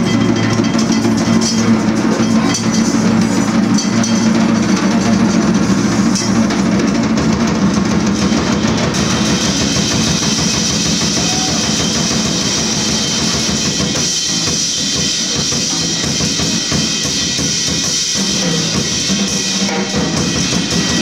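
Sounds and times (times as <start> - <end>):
bright cymbal wash: 0.0 - 21.0
drum kit free improvisation: 0.0 - 21.0.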